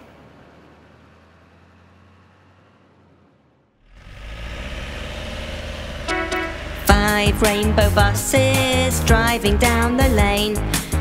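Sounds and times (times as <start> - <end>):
cartoon bus engine rumble: 0.0 - 11.0
short horn toots: 6.1 - 6.7.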